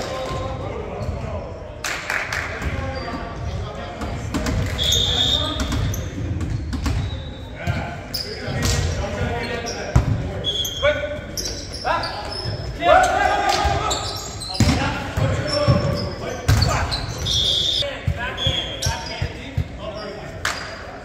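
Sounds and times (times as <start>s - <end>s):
sneaker squeaks on court: 4.8s - 8.8s, 13.8s - 20.8s
players shouting: 10.8s - 18.6s.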